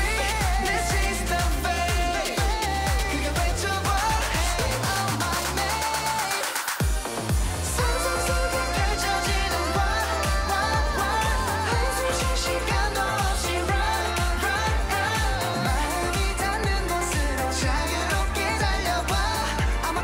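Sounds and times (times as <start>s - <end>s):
male group singing in unison: 0.0s - 6.8s, 7.7s - 20.0s
heavy bass drum beat: 0.0s - 20.0s.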